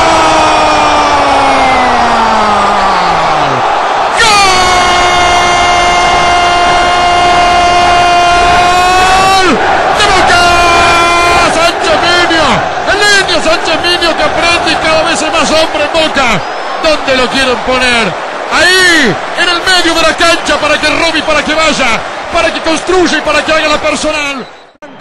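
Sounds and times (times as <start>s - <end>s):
commentator shouting: 0.0s - 24.5s
stadium crowd: 0.0s - 25.0s.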